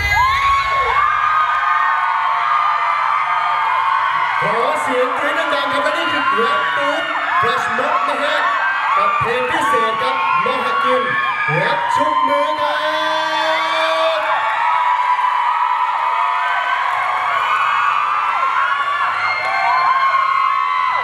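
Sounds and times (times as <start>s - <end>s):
crowd screaming and cheering: 0.0s - 21.0s.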